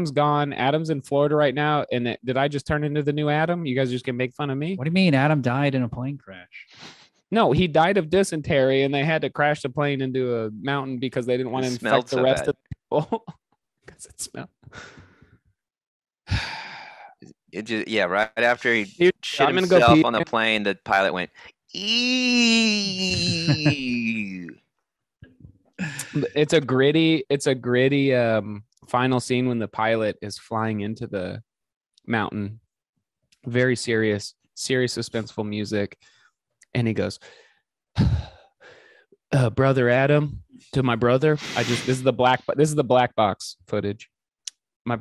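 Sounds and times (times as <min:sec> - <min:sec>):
man exhaling into microphone: 0:16.3 - 0:17.1
man sighing: 0:16.3 - 0:17.1, 0:19.4 - 0:20.2, 0:21.8 - 0:24.5, 0:25.8 - 0:26.4
breathy laughter: 0:23.0 - 0:24.5.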